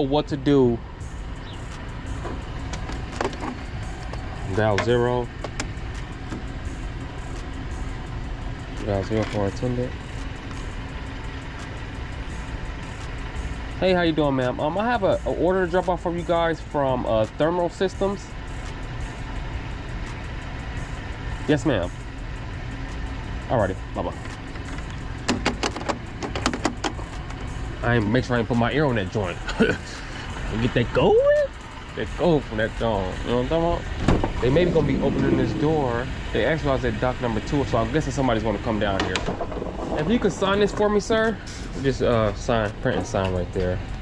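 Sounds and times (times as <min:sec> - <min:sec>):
low background rumble: 0:17.8 - 0:44.0.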